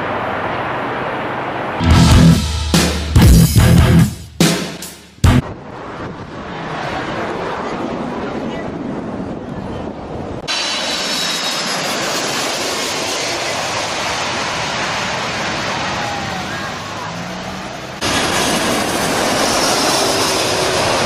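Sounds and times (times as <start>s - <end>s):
jet engines roaring: 0.0s - 21.0s.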